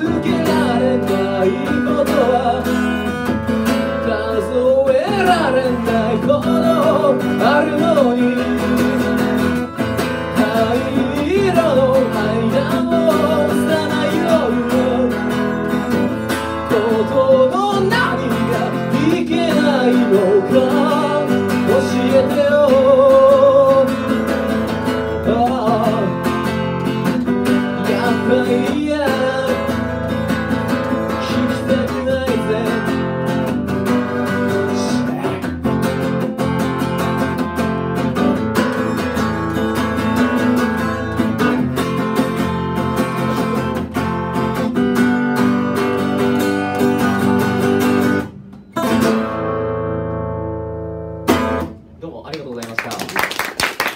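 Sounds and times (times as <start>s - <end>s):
man singing: 0.0s - 36.2s, 37.9s - 44.6s, 46.0s - 48.1s
acoustic guitar strumming: 0.0s - 52.3s
people clapping: 52.2s - 53.9s.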